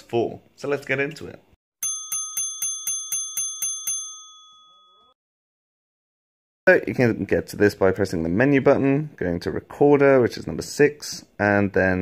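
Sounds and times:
small bell ringing: 1.8s - 5.2s.

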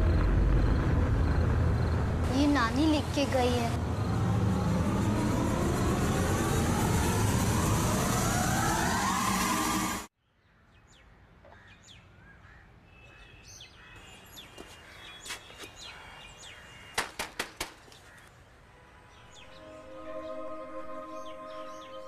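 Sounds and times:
low rumble: 0.0s - 10.1s
rising horror score tone: 0.0s - 10.1s
birds chirping: 10.3s - 18.4s.

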